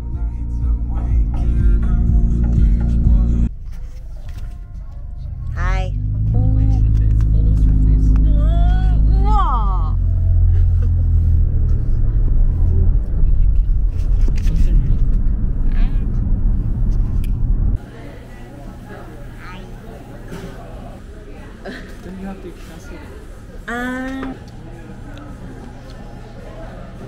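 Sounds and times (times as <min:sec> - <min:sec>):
car road and engine rumble: 0:00.0 - 0:19.8.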